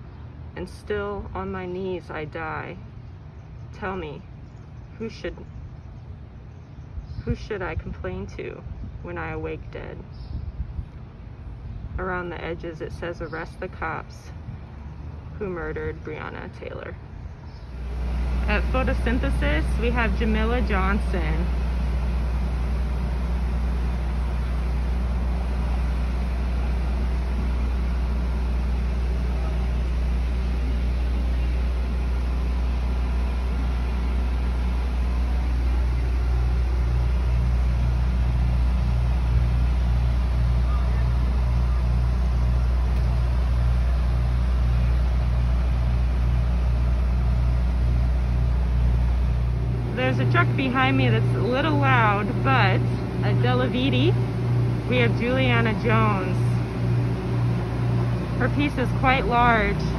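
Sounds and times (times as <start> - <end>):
truck engine idling: 17.1 - 59.9.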